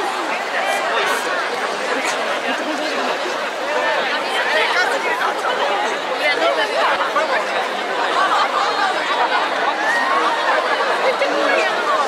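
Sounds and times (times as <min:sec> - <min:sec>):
closer voices talking: 0:00.0 - 0:12.0
street crowd chattering: 0:00.0 - 0:12.0.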